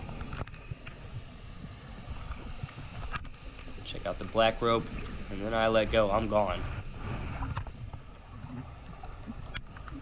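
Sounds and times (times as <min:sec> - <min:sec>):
faint ticks: 0:00.0 - 0:03.8, 0:07.3 - 0:10.0
underwater current rumble: 0:00.0 - 0:10.0.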